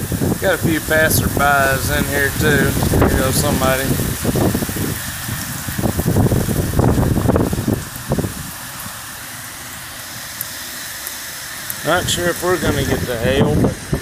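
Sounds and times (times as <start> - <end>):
wind gusts on microphone: 0.0 - 9.1, 11.8 - 14.0
heavy rain pouring: 0.0 - 14.0.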